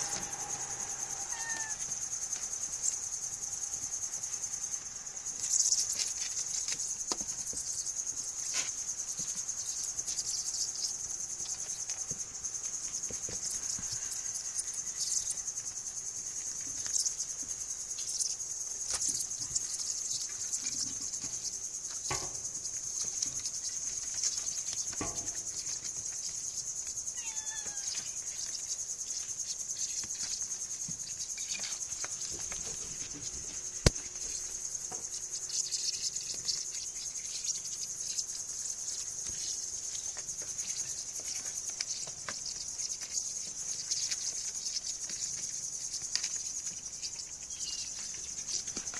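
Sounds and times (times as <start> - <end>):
insects trilling: 0.0 - 48.9
kittens scuffling: 29.1 - 37.0.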